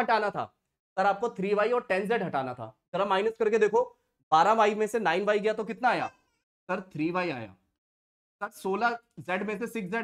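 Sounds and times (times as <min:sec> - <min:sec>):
man speaking: 0:00.0 - 0:07.7, 0:08.4 - 0:10.0.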